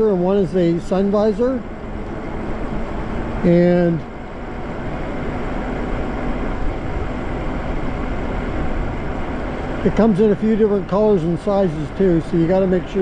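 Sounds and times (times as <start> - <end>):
wind and road noise: 0.0 - 13.0.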